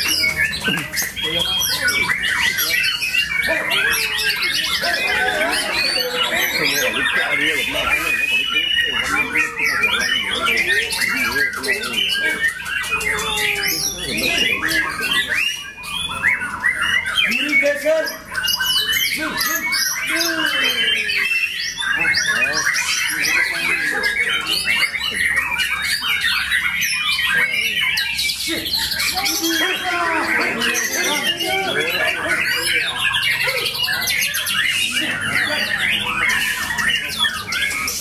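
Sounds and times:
caged songbirds singing: 0.0s - 38.0s.

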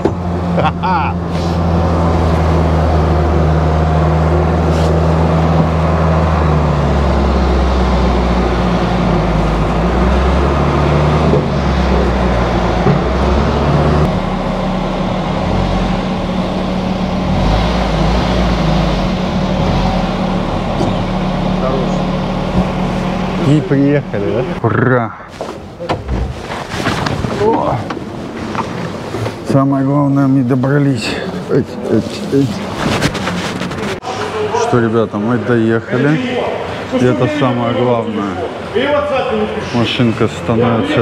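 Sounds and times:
van engine running: 0.0s - 34.0s.

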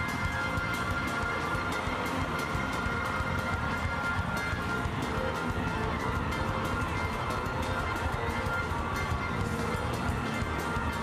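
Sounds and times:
church music with steady beat: 0.0s - 11.0s.

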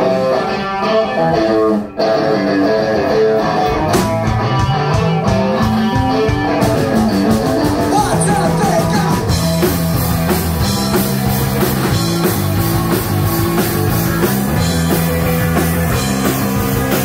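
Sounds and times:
bass guitar: 0.0s - 17.0s
electric guitar: 0.0s - 17.0s
drum kit and cymbals: 3.5s - 17.0s.

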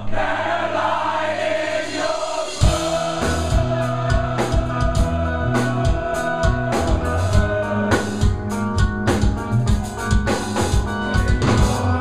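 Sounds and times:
audience singing along: 0.0s - 8.4s
live rock band: 2.2s - 12.0s
heavy drum hits: 2.6s - 11.9s.

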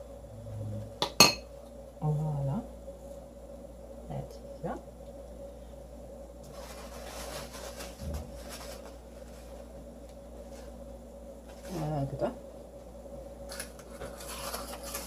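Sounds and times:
steady low hum: 0.0s - 15.0s
rustling and light scraping: 6.4s - 9.8s, 10.4s - 10.8s, 11.4s - 12.0s, 13.5s - 15.0s.

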